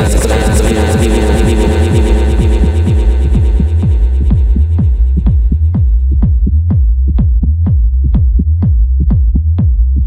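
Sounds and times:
deep bass: 0.0s - 10.0s
electronic kick drum: 0.0s - 10.0s.

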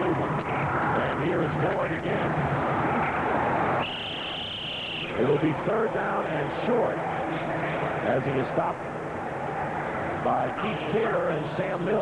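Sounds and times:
stadium crowd noise: 0.0s - 12.0s
referee's whistle long high note: 3.8s - 5.2s.

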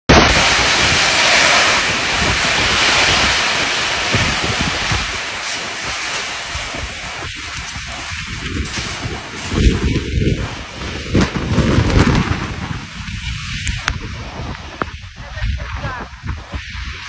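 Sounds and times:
torrential rain pouring: 0.1s - 17.0s
wind gusting across microphone: 0.1s - 17.0s.

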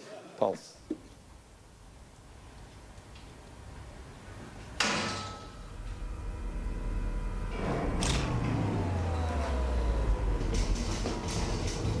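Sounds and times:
low rumbling drone: 3.5s - 12.0s
sudden hit: 4.8s - 12.0s
slowly falling tone: 5.5s - 12.0s.

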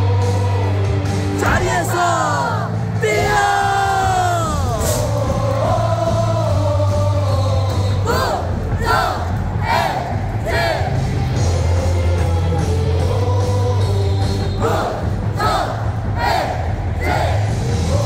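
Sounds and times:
crowd singing and yelling: 0.0s - 18.0s
song over stadium speakers: 0.0s - 18.0s
crowd shouting in time: 1.4s - 5.0s, 8.0s - 11.1s, 14.6s - 17.8s.

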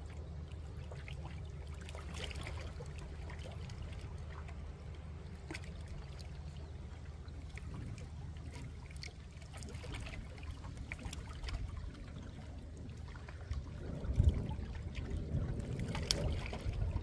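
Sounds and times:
river water lapping at bank: 0.0s - 17.0s
steady low rumble: 0.0s - 17.0s.

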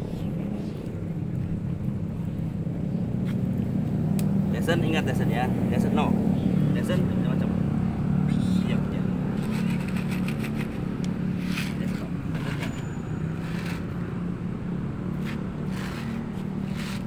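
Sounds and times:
low motor hum: 0.0s - 17.0s.

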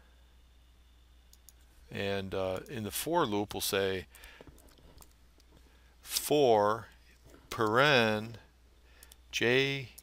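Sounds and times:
steady low hum: 0.0s - 10.0s
faint clicks: 9.0s - 9.2s.

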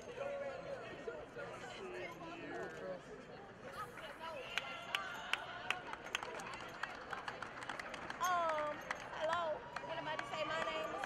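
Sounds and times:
faint crowd chatter: 0.0s - 11.0s.

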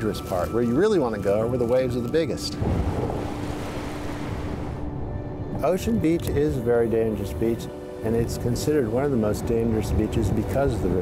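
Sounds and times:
ocean waves breaking: 2.5s - 6.0s.

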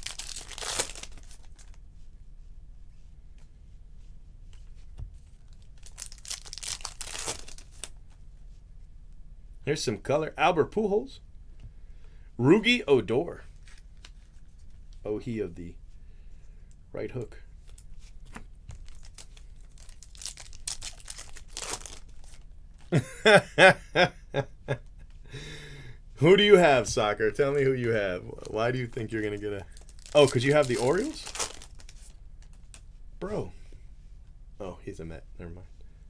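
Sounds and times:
cards rustling: 0.0s - 1.8s, 4.5s - 8.2s, 13.5s - 15.0s, 17.6s - 22.9s, 26.8s - 32.9s
wrapper tearing and crinkling: 0.0s - 1.8s, 5.5s - 8.0s, 18.7s - 22.9s, 28.4s - 32.6s
person laughing: 22.9s - 25.5s.

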